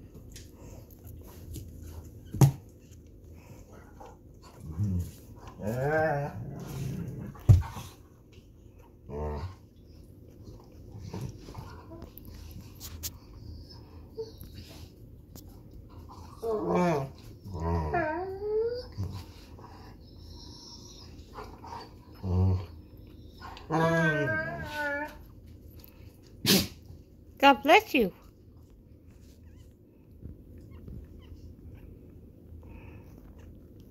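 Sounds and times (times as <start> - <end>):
dog sneezing: 26.4 - 26.8.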